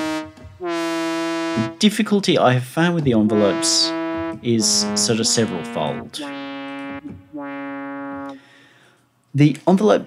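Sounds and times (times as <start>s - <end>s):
buzzy synthesizer note: 0.0s - 2.0s, 3.1s - 8.5s.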